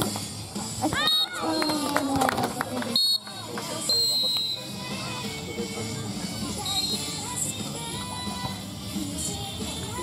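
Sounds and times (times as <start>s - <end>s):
referee's whistle blasts: 1.0s - 1.7s, 3.0s - 4.7s, 6.6s - 7.1s.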